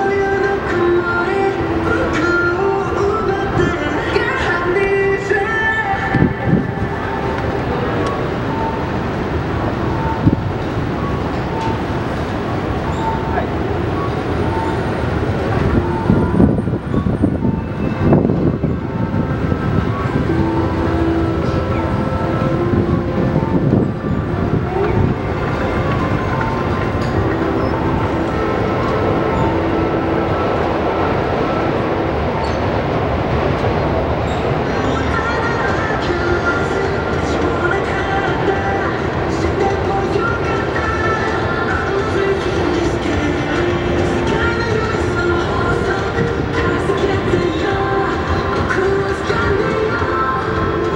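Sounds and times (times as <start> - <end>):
passers-by voices: 0.0 - 50.9
rail noise: 0.0 - 50.9
traffic noise: 0.0 - 50.9
short beeps: 6.0 - 32.8.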